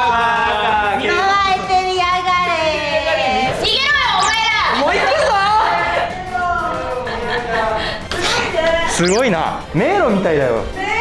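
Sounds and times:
excited high-pitched voices: 0:08.9 - 0:09.3.

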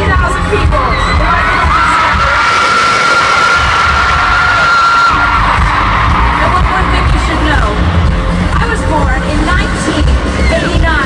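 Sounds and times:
crowd cheering and screaming: 0:00.3 - 0:08.3.

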